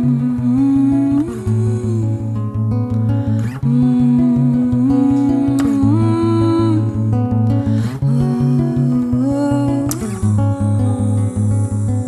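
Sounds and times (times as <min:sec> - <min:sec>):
woman humming a melody: 0:00.0 - 0:02.4, 0:03.6 - 0:07.1, 0:08.0 - 0:12.0
fingerpicked acoustic guitar: 0:00.0 - 0:12.0.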